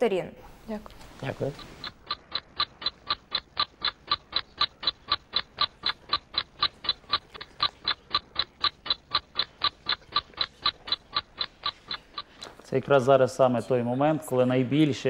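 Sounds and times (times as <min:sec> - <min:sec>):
clock ticking: 0:00.8 - 0:13.6.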